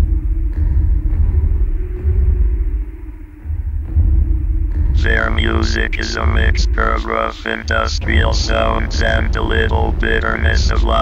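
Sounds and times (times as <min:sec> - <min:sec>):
deep electronic rumbling drone: 0:00.0 - 0:11.0
faint steady hum: 0:00.0 - 0:11.0.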